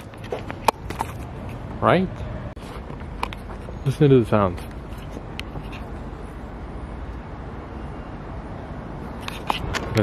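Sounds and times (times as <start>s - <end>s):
low hum of traffic: 0.0s - 10.0s.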